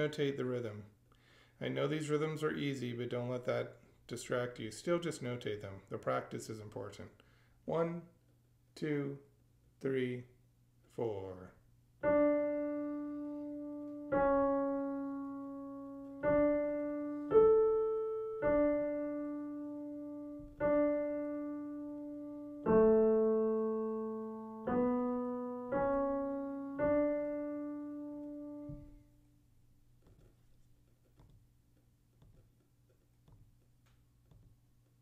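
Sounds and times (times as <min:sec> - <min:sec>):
slow piano melody: 0:12.0 - 0:29.4.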